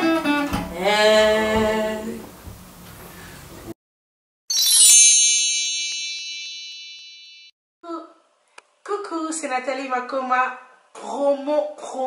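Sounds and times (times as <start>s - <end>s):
bright bell-like chime run: 4.5s - 7.6s.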